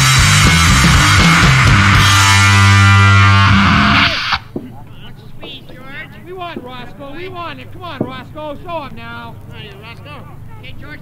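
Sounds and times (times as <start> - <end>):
distorted bass guitar with drums: 0.0 - 4.8.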